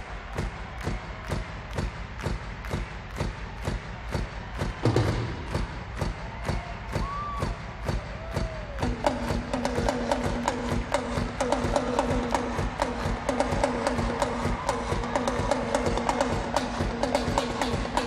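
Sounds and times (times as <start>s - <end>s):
drum kit steady beat: 0.0s - 18.0s
people whooping: 6.2s - 9.0s, 11.8s - 16.1s.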